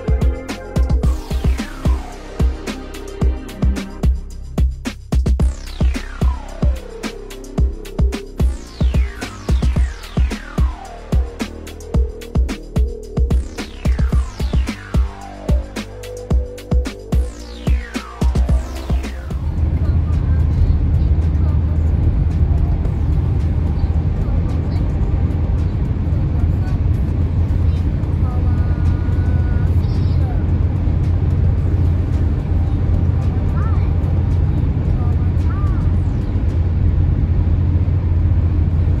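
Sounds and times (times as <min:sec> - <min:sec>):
car cabin road rumble: 0:16.4 - 0:39.0.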